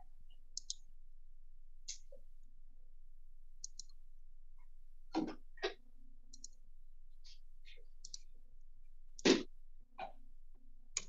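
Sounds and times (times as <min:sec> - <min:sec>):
mouse and keyboard clicks: 0:00.6 - 0:00.8, 0:03.6 - 0:04.0, 0:05.2 - 0:06.6, 0:08.0 - 0:08.3.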